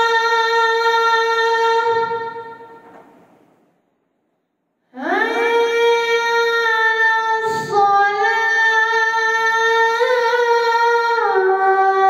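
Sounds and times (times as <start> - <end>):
boy chanting call to prayer: 0.0 - 2.8, 4.8 - 12.0.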